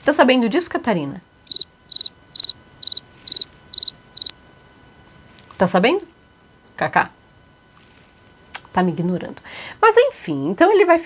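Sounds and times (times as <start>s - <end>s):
short high-pitched chirps: 1.4s - 4.3s.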